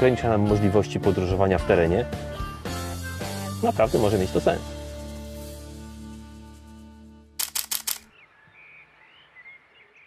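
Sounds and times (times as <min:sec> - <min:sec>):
quiet outdoor ambience: 0:07.4 - 0:10.0
faint birdsong chirps: 0:07.9 - 0:10.0.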